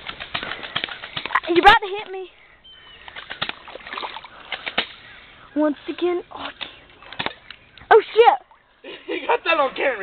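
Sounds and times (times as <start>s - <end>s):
feet splashing through water: 0.0s - 1.8s, 2.7s - 5.4s.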